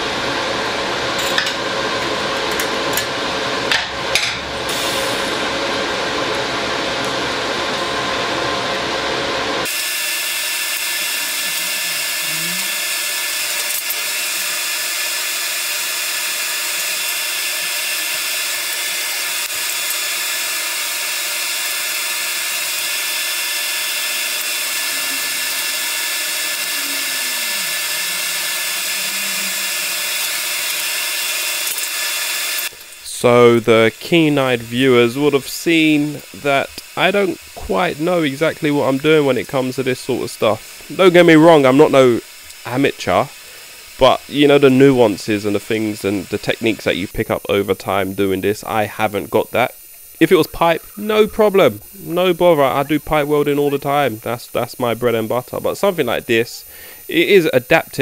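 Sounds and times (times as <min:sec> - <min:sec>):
steady hum with held tones: 0:00.0 - 0:58.0
welding arc hissing: 0:02.2 - 0:58.0.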